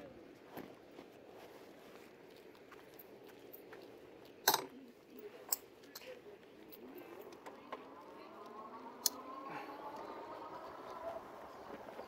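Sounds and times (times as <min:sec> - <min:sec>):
electric bike motor whining: 0:07.0 - 0:12.0.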